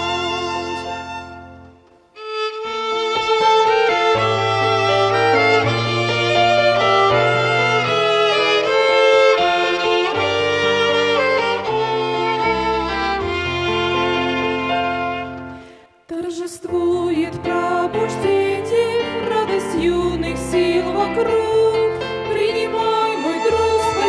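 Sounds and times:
violins playing a melody: 0.0s - 15.7s, 17.6s - 24.0s
digital piano accompaniment: 0.0s - 15.9s.

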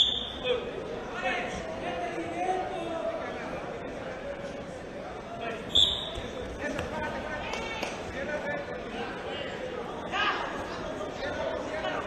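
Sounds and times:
referee's whistle blast: 0.0s - 0.4s, 5.7s - 6.2s
crowd voices: 0.0s - 12.0s.

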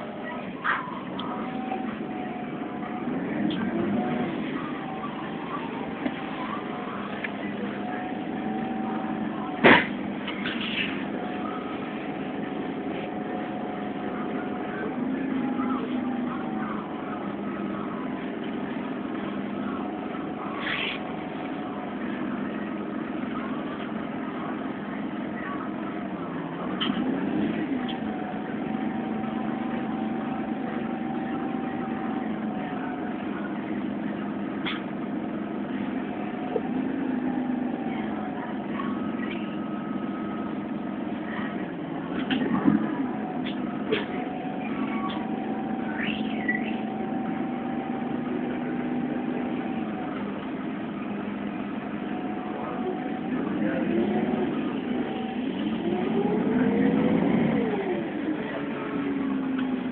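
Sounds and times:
bus engine humming: 0.0s - 59.9s.

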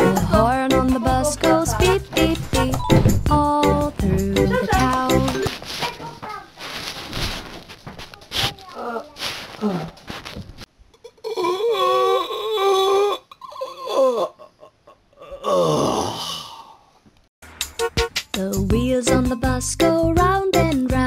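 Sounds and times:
person wailing: 15.2s - 16.6s.

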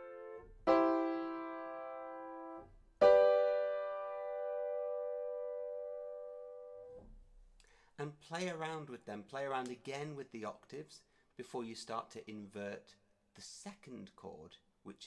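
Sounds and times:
piano chords: 0.0s - 7.0s.

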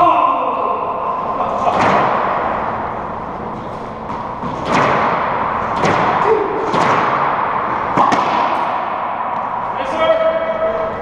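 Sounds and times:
racquetball hits echoing: 1.0s - 11.0s.

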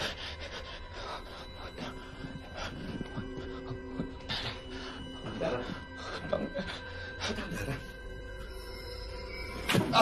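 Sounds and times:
horror film score drone: 0.0s - 10.0s.

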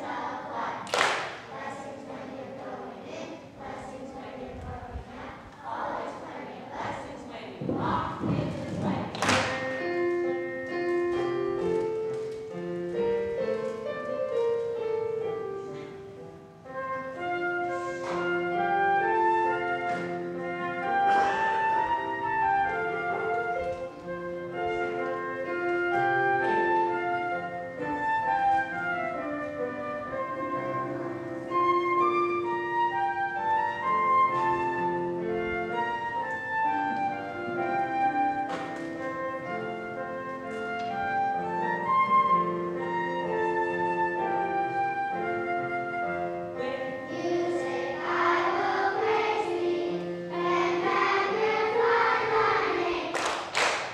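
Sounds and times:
piano accompaniment: 0.0s - 53.9s
flute melody: 9.6s - 49.4s.

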